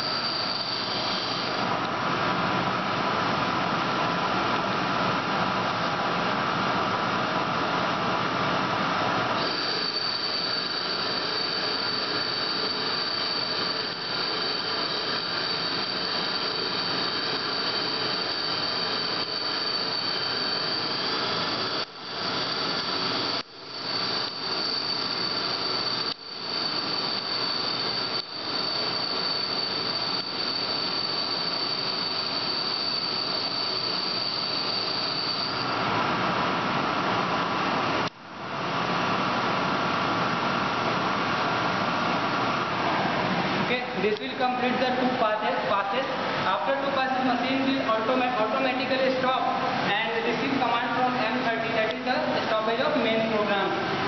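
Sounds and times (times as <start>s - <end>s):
high squeal from cutting: 0.0s - 1.6s, 9.4s - 36.0s
lathe machining noise: 0.0s - 3.8s, 8.3s - 38.1s.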